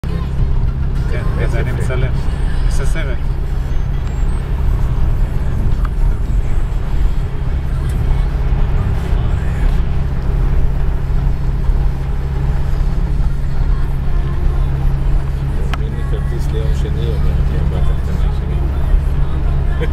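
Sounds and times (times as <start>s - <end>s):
car engine and tyre drone: 0.0s - 19.9s.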